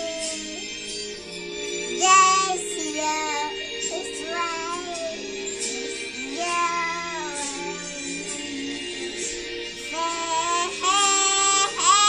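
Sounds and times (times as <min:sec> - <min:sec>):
toddler singing: 0:00.0 - 0:00.7, 0:02.0 - 0:08.8, 0:09.9 - 0:12.0
karaoke backing music: 0:00.0 - 0:12.0.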